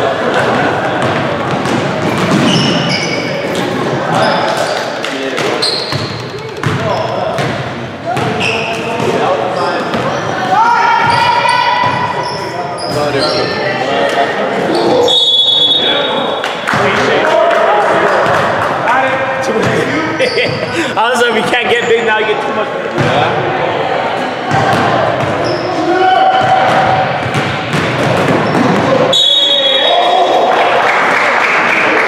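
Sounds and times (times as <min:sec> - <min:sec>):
players calling out: 0:00.0 - 0:31.0
sneakers squeaking: 0:00.3 - 0:16.8, 0:19.6 - 0:22.4, 0:24.3 - 0:30.3
basketball bouncing on hardwood: 0:26.4 - 0:28.9.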